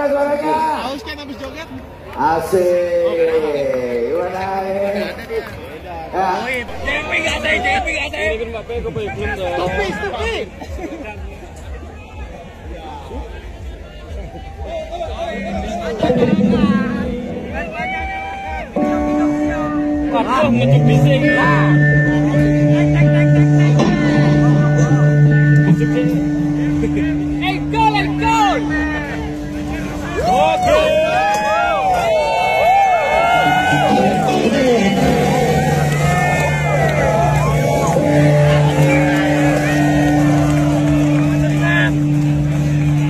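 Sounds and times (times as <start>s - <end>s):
crowd voices: 0.0s - 43.0s
stage sound: 6.0s - 10.3s, 14.1s - 43.0s.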